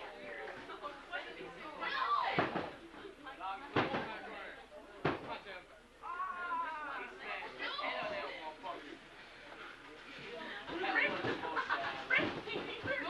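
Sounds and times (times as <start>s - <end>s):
crowd shouting and chattering: 0.0s - 13.0s.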